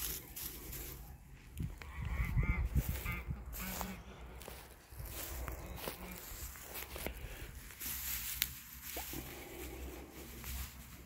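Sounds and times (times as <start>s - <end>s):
footsteps on straw: 0.0s - 11.0s.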